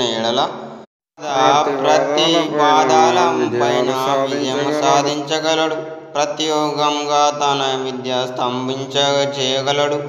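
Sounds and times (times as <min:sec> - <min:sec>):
man chanting: 0:01.2 - 0:10.0.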